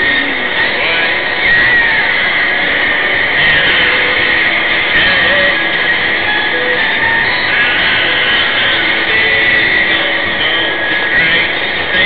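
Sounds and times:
road and wind noise hiss: 0:00.0 - 0:12.0.

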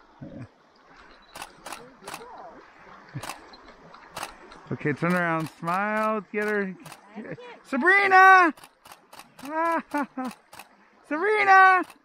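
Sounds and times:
camera shutter clicks: 0:01.3 - 0:02.2, 0:03.2 - 0:03.4, 0:04.1 - 0:04.4, 0:08.5 - 0:10.7.

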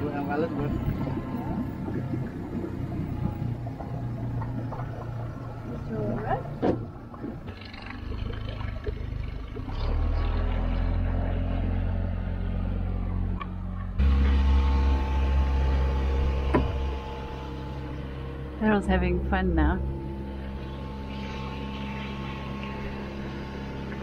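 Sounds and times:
outboard motor hum: 0:00.0 - 0:24.0.

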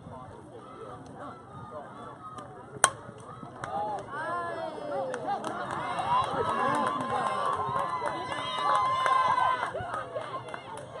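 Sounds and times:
bat striking ball: 0:02.8 - 0:03.0.

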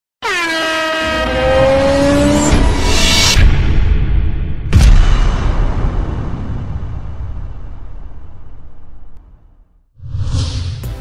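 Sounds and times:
horn-like blare: 0:00.2 - 0:02.5.

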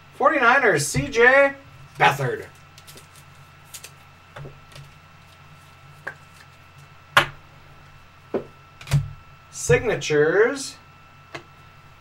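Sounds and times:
faint high whine: 0:00.0 - 0:12.0
low electrical hum: 0:00.0 - 0:12.0.

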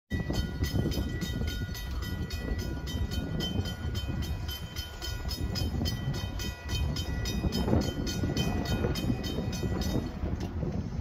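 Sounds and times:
rapid regular ringing: 0:00.1 - 0:10.2
freight train rumble: 0:00.1 - 0:11.0.

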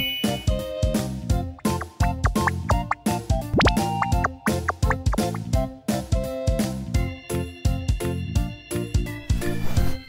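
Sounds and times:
bouncy background music: 0:00.0 - 0:09.4
upward-sliding cartoon sound effect: 0:01.6 - 0:05.5.

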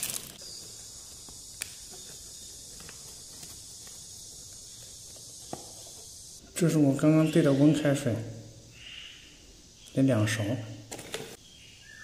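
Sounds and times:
steady hiss: 0:00.0 - 0:10.5.

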